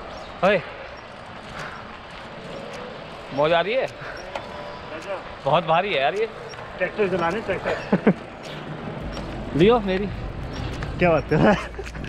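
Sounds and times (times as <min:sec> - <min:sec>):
wind and riding noise: 0:00.0 - 0:12.0.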